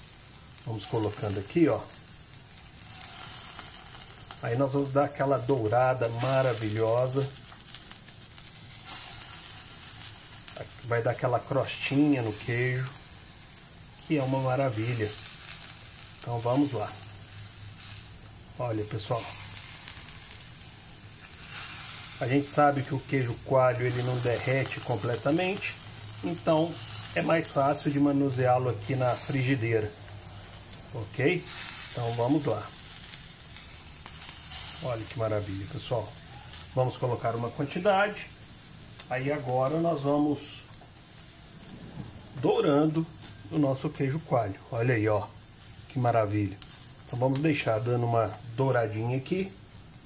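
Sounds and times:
cheese sizzling in a skillet: 0:00.0 - 0:50.0.

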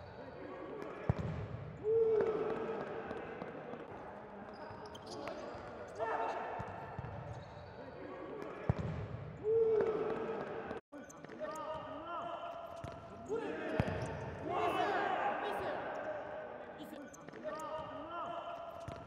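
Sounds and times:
shoe squeaks on court: 0:04.5 - 0:06.0, 0:06.9 - 0:08.8
players shouting: 0:13.2 - 0:16.6.

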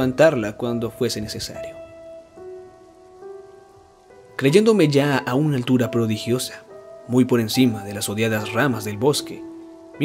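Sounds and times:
faint steady hiss: 0:00.0 - 0:10.0
sustained background music notes: 0:00.0 - 0:10.0.

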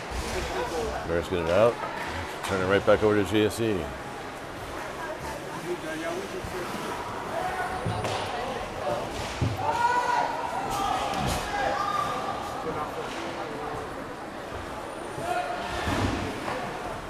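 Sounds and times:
echoing arena background noise: 0:00.0 - 0:17.0.

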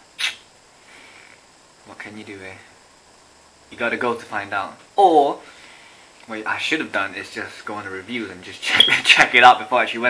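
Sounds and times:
man speaking: 0:06.3 - 0:10.0.

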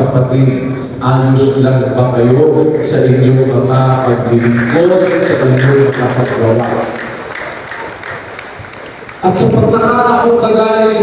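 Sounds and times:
crowd applauding: 0:04.3 - 0:09.8.

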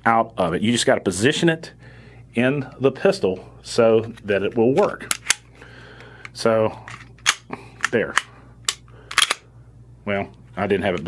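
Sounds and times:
pistol clicks: 0:07.2 - 0:09.4.

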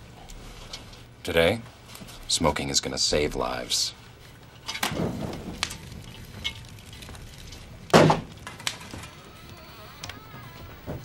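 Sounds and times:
loud thump with clatter: 0:04.8 - 0:05.8, 0:07.9 - 0:08.3.

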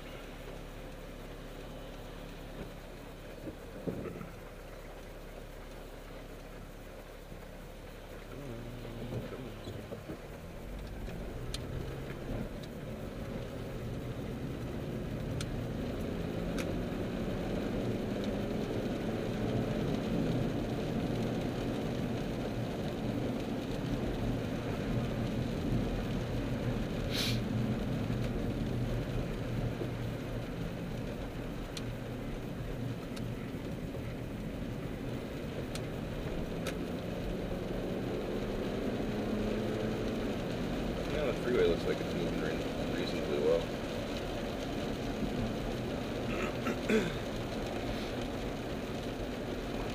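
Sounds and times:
car engine accelerating: 0:00.0 - 0:49.9
tyres on wet road: 0:00.0 - 0:49.9
faint clicks: 0:09.1 - 0:12.8, 0:29.7 - 0:34.0, 0:35.4 - 0:37.0.

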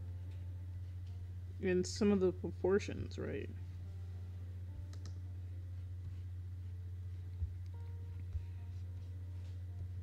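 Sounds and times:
low electrical hum: 0:00.0 - 0:10.0.

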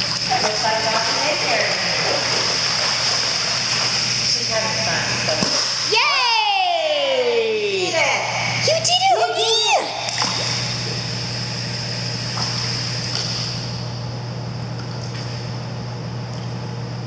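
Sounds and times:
pool water jet rushing: 0:00.0 - 0:14.0
low even hum: 0:00.0 - 0:17.0.

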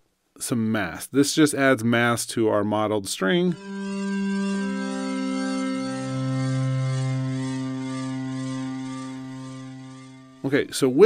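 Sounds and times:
low bowed-string synth note: 0:03.5 - 0:11.0.

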